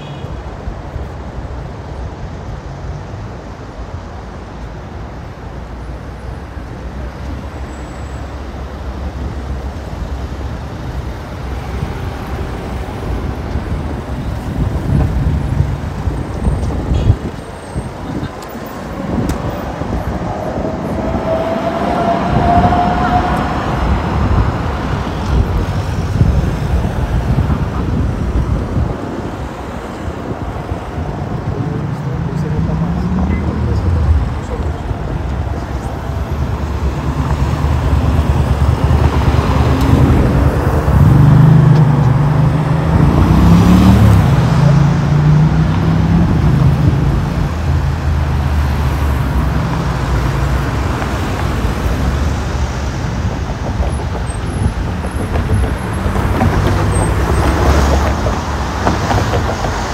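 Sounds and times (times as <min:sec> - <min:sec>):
rumble of road traffic: 0:00.0 - 0:59.9.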